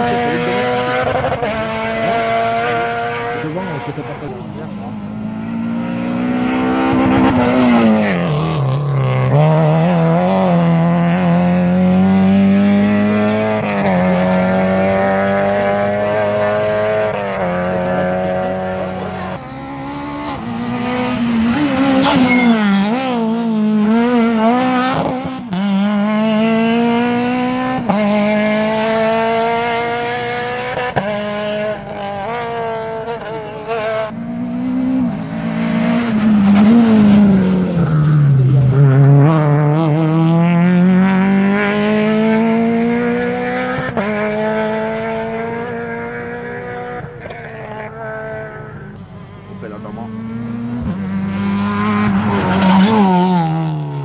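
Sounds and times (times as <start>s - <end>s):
rally car engines at hard throttle: 0.0s - 54.0s.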